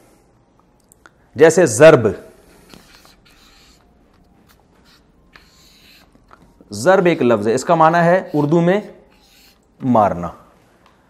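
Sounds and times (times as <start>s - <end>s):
man speaking: 1.4s - 2.4s, 6.7s - 9.0s, 9.8s - 10.5s
marker writing on whiteboard: 2.5s - 9.9s.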